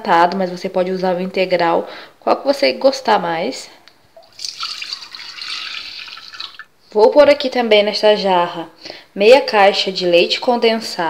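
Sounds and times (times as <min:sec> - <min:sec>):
milk pouring into a jug: 0:04.2 - 0:06.7.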